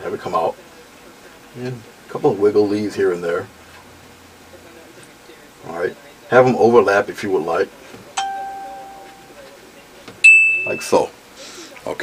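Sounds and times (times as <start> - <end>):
bell-like chime: 8.2 - 9.3, 10.3 - 11.0.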